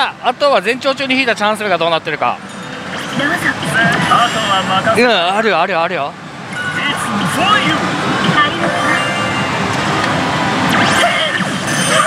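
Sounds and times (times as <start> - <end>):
slot machine hall din: 6.4 - 12.0.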